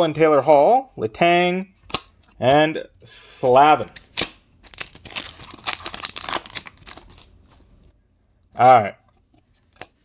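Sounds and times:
foil wrapper tearing and crinkling: 3.9 - 7.4.

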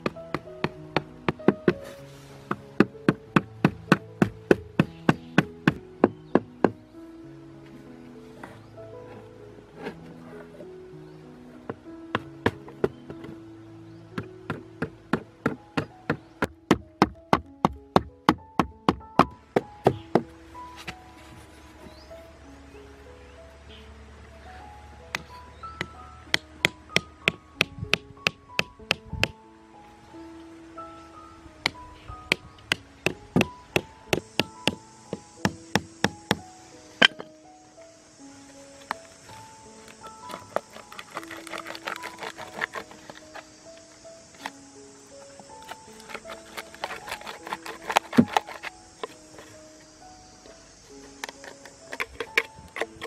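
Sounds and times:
background music with held notes: 0.0 - 53.0
plastic bottle clicks and crackles: 39.8 - 43.5, 45.5 - 49.5, 51.0 - 53.0.

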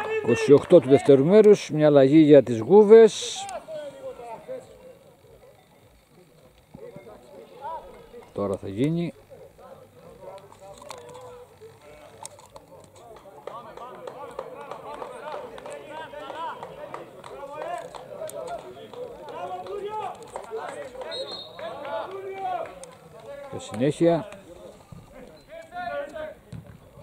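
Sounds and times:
men talking at a distance: 0.0 - 27.0.

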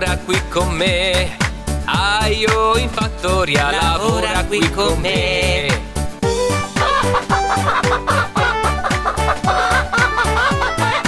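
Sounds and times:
upbeat children's music: 0.0 - 11.0
cartoon hens clucking: 6.8 - 11.0.

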